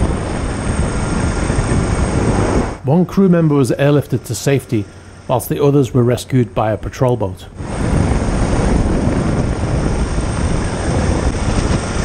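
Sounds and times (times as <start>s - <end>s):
wind rushing: 0.0s - 5.8s, 7.5s - 12.0s
helicopter engine and rotor: 0.0s - 12.0s.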